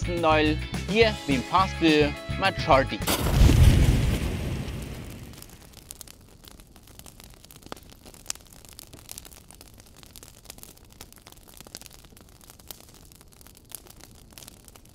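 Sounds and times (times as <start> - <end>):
small crackles and clicks: 4.2 - 14.9.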